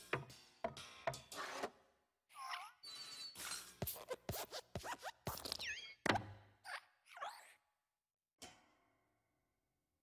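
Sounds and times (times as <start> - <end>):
springy metal squeaks: 2.8 - 3.7.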